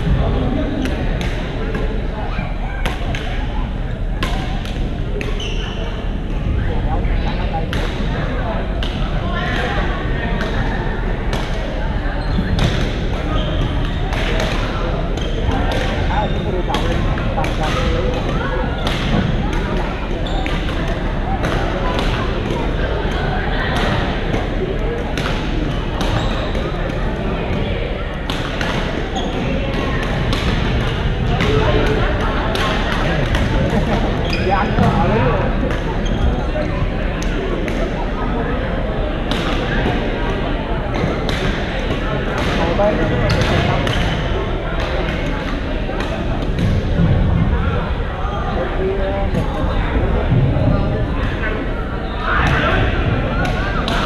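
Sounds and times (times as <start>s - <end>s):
echoing murmur of voices: 0.0s - 54.0s.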